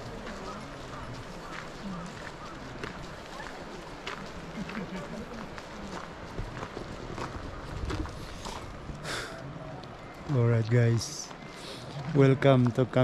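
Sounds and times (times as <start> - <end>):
footsteps on gravel: 0.0 - 9.0
faint voices talking: 0.0 - 13.0.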